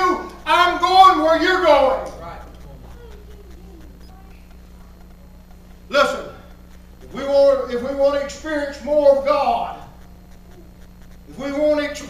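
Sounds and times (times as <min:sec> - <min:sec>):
low electrical hum: 0:00.0 - 0:12.0
faint wavering voice-like sound: 0:02.2 - 0:05.5, 0:09.9 - 0:11.0.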